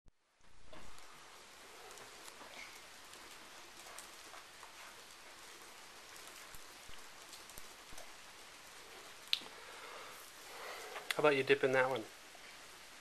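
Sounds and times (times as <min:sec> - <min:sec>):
steady hiss: 0:00.2 - 0:13.0.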